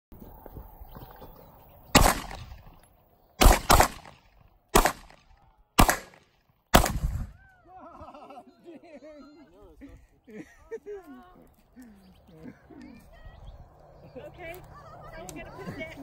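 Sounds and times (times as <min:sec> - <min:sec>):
pistol shots with echo: 0:02.0 - 0:02.7, 0:03.4 - 0:07.3.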